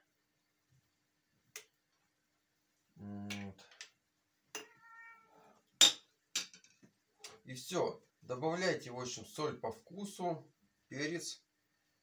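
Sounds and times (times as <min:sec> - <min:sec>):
cat meowing: 0:04.6 - 0:05.6.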